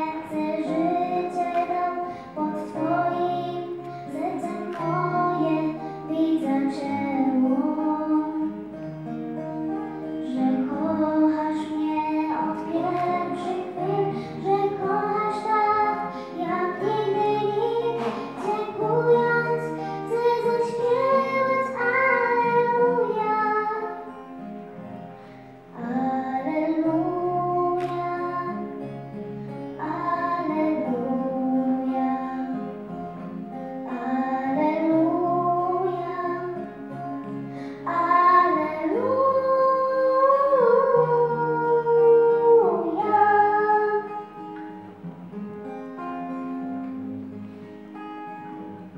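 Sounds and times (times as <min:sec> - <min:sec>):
girl singing into a microphone: 0:00.0 - 0:24.5, 0:25.2 - 0:44.9
acoustic guitar: 0:00.0 - 0:48.9.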